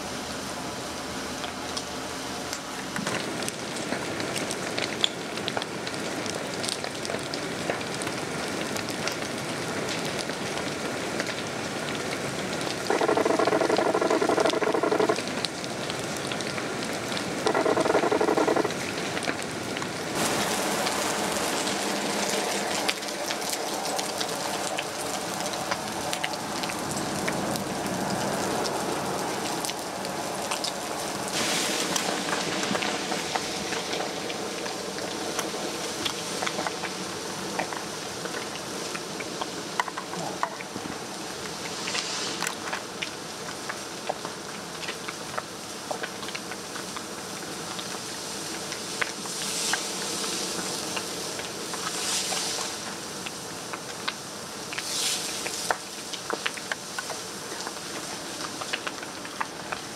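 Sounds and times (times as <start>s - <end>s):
burning wood crackling: 1.3s - 59.9s
loud steady tone: 12.9s - 15.2s, 17.4s - 18.8s.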